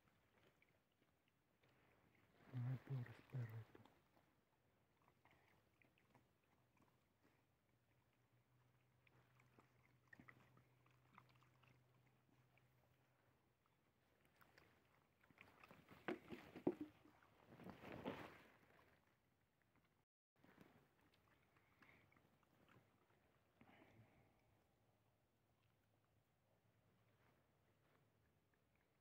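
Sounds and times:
faint ticks of dogs feeding: 0.0s - 17.5s, 18.5s - 29.0s.

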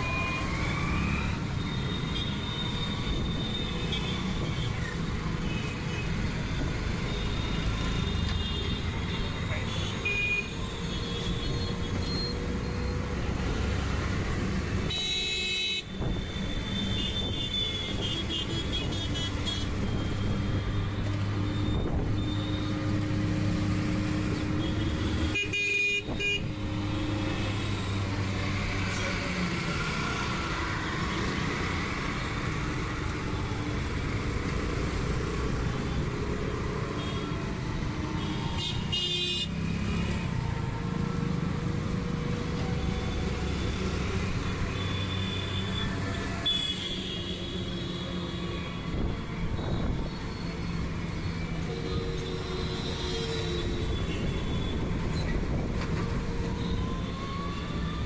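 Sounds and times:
scooters and cars passing: 0.0s - 14.9s, 16.0s - 58.0s.

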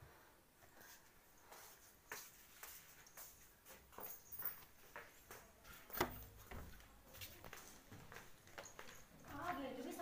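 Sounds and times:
footsteps on concrete floor: 0.6s - 10.0s.

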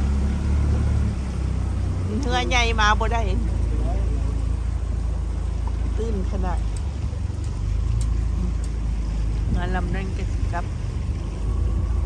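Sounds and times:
boat motor rumbling: 0.0s - 12.0s.

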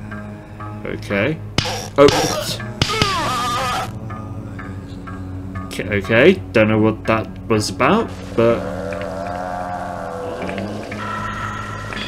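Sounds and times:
low drone: 8.1s - 12.0s.

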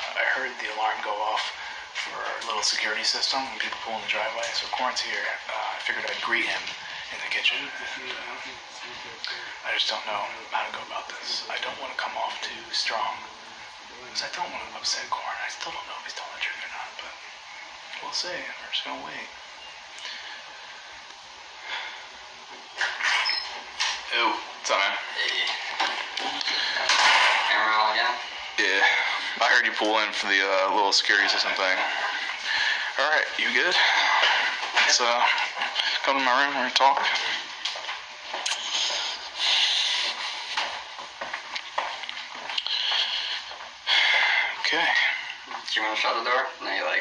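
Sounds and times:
room tone hiss: 0.0s - 47.0s
breath through the nose: 38.5s - 40.6s.

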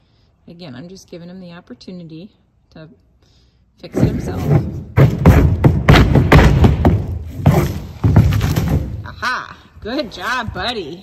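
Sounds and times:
horse thrashing: 3.9s - 9.2s.

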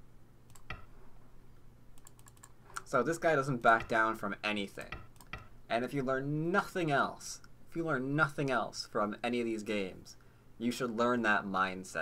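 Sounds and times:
light computer clicks: 0.5s - 0.9s, 2.0s - 2.9s.

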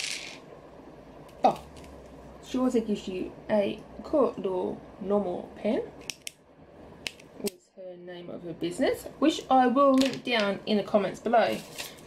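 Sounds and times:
paper rustling: 11.4s - 12.0s.

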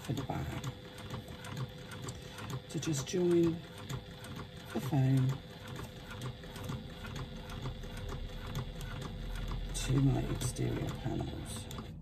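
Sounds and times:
sewing machine stitching: 0.0s - 12.0s.

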